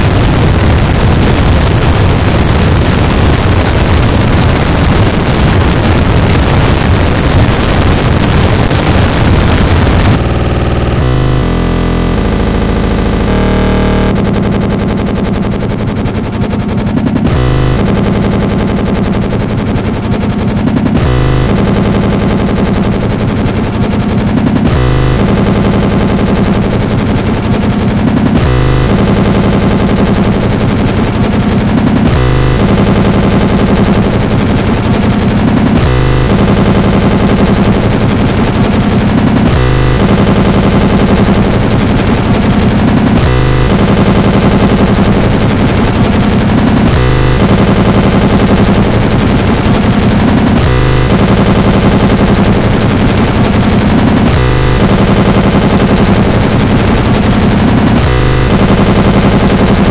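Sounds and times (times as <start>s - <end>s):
harsh distorted noise music: 0.0s - 59.9s.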